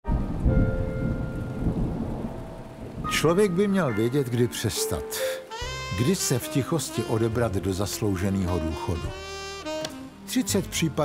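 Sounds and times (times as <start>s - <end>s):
low rumble of thunder: 0.1s - 4.4s
steady rain: 0.1s - 11.0s.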